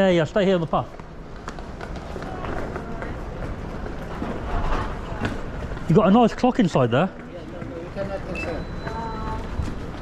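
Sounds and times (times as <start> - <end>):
low traffic rumble: 0.0 - 10.0
footsteps on stone paving: 0.8 - 10.0.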